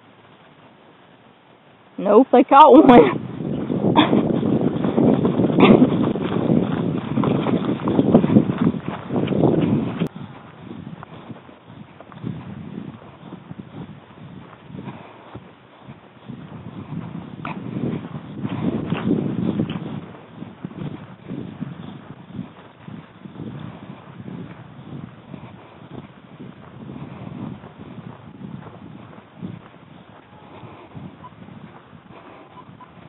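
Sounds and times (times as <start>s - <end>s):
dogs and hog noise: 3.9s - 4.2s.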